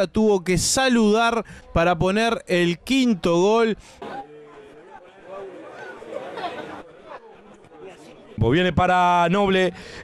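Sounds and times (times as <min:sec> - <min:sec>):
faint voices calling out: 0:03.8 - 0:08.4.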